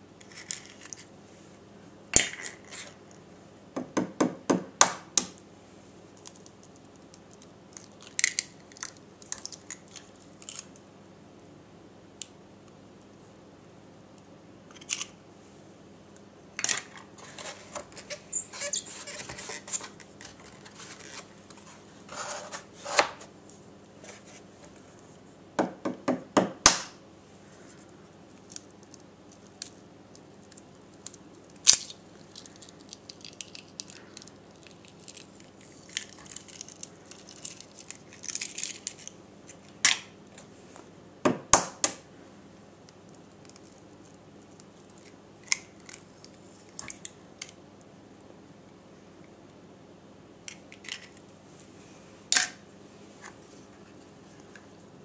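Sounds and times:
eggshell crackling: 0:06.2 - 0:10.8, 0:28.3 - 0:40.2.

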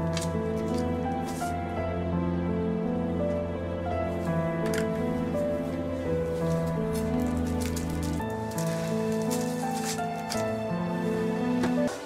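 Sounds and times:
paper envelopes rustling: 0:00.0 - 0:01.6, 0:04.1 - 0:10.6
soft background music chords: 0:00.0 - 0:12.0.

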